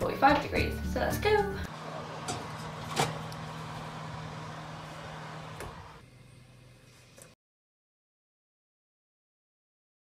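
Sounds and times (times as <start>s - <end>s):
fan oven humming: 1.6s - 7.4s.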